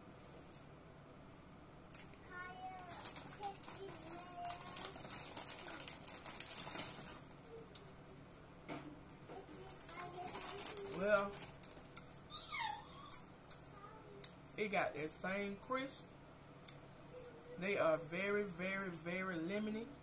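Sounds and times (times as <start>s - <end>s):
crunching and chewing cookie: 2.8s - 7.3s.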